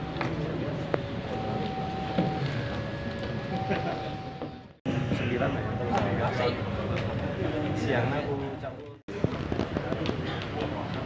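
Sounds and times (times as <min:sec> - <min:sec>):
crowd murmuring: 0:00.0 - 0:11.0.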